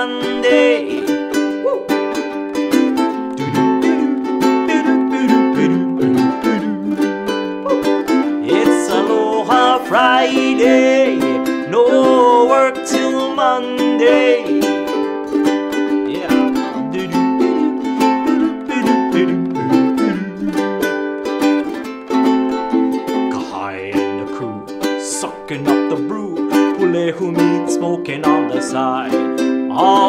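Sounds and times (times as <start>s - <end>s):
man singing: 0.0s - 1.2s, 3.3s - 15.1s, 15.8s - 20.9s, 23.2s - 30.0s
ukulele strumming: 0.0s - 30.0s.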